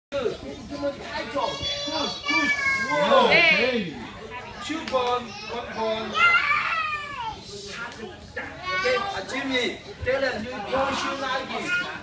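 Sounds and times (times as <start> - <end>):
children squealing and wailing: 1.4 - 3.6, 5.5 - 7.4.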